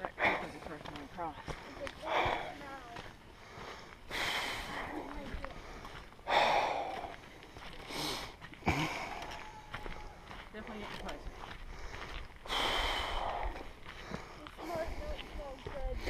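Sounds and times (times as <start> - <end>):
footsteps on dirt and rock: 0.0 - 16.0
hiker breathing: 0.0 - 16.0.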